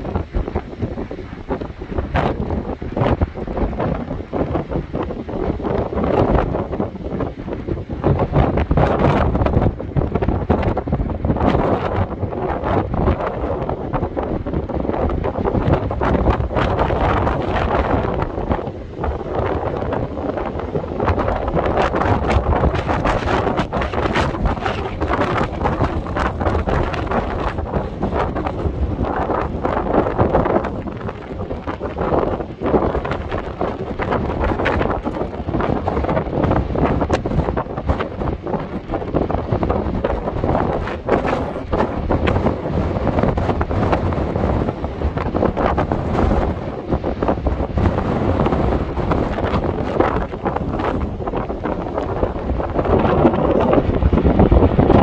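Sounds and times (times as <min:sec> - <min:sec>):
gusty wind buffeting microphone: 0:00.0 - 0:55.0
surf breaking on shore: 0:00.0 - 0:55.0.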